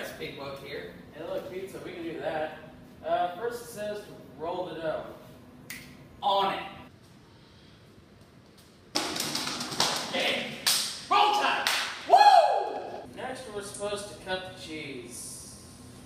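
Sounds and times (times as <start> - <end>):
sharp taps and clatter: 8.9 - 10.1.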